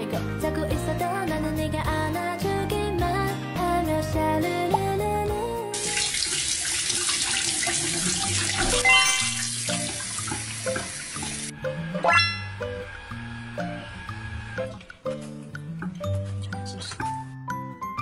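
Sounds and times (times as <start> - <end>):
light background music: 0.0 - 6.1, 8.3 - 18.0
meat rinsed by hand: 5.7 - 11.5.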